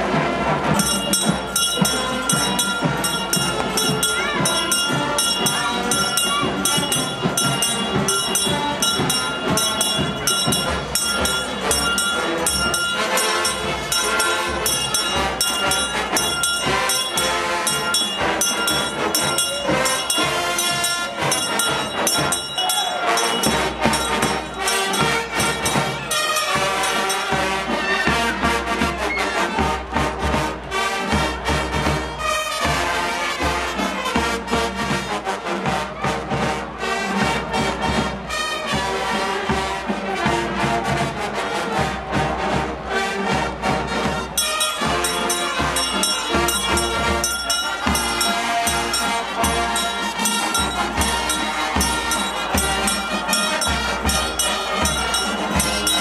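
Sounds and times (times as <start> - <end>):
brass band with drums: 0.0 - 56.0
loud outdoor crowd: 0.0 - 56.0
handbell shaken: 0.8 - 27.7, 44.3 - 56.0.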